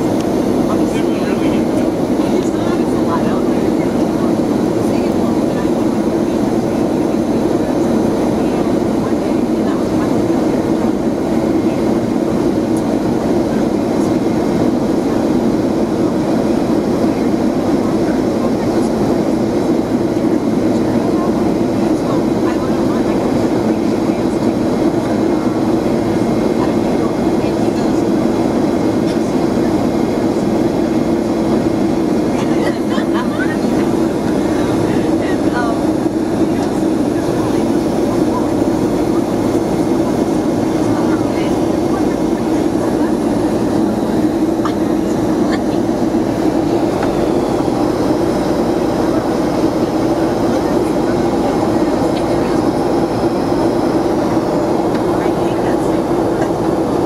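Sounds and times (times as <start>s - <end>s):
airplane cabin drone: 0.0s - 57.0s.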